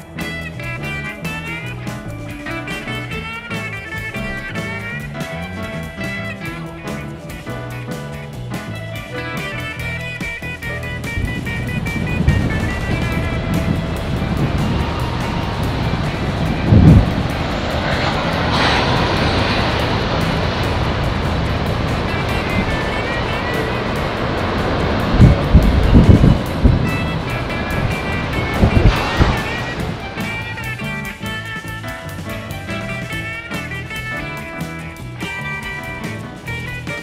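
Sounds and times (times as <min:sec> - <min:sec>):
wind buffeting microphone: 0:00.0 - 0:35.3
faint guitar music: 0:00.0 - 0:37.0
surf breaking on rocky shore: 0:09.3 - 0:33.4.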